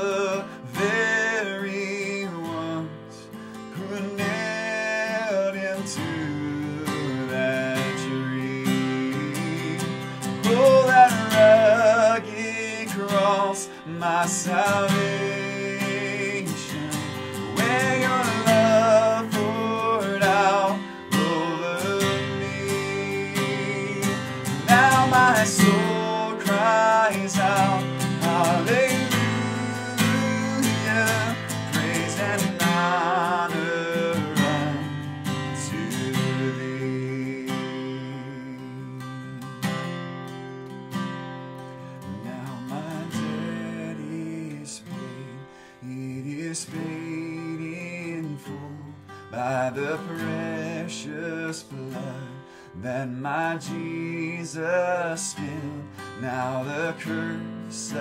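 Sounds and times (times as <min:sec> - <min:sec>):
man singing: 0:00.0 - 0:40.0, 0:42.0 - 0:58.0
acoustic guitar strumming: 0:00.0 - 0:58.0.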